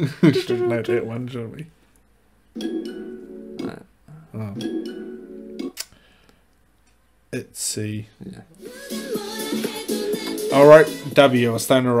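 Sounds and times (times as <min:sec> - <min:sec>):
held chord of pop song: 0:08.6 - 0:11.6.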